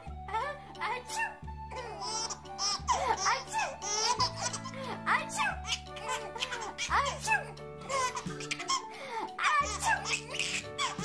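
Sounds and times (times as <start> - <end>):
background music with held notes: 0.0 - 11.0
babies laughing and giggling: 1.8 - 11.0.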